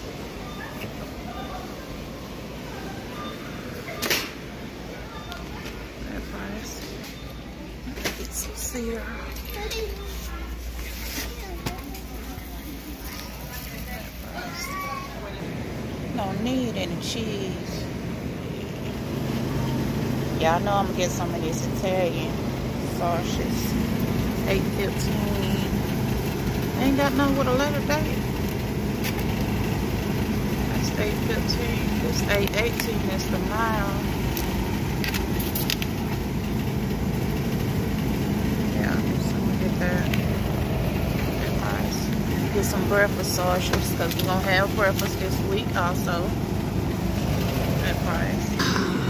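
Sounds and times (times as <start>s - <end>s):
faint voices of shoppers: 0.0s - 36.1s, 38.6s - 46.4s
supermarket background rumble: 0.0s - 49.0s
steady low hum: 15.2s - 49.0s.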